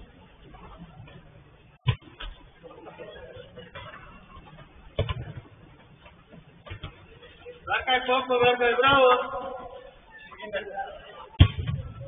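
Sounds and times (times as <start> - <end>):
football being kicked: 5.0 - 5.4, 11.4 - 12.0.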